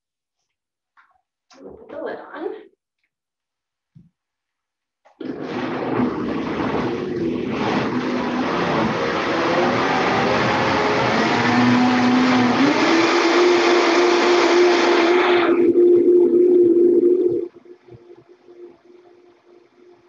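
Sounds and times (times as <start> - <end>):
blender running: 5.2 - 15.8.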